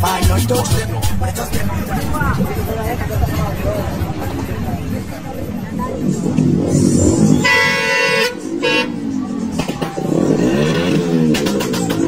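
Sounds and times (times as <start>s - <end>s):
loud music with singing: 0.0s - 12.0s
bus horn blasts: 7.4s - 9.2s.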